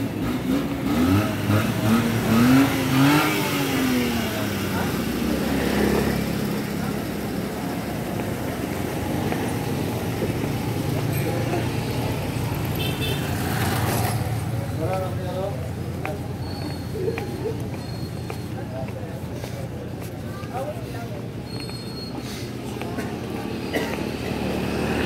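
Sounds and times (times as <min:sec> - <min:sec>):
vehicle engine passing: 0:00.0 - 0:20.1, 0:22.2 - 0:25.0
traffic hum: 0:00.0 - 0:25.0.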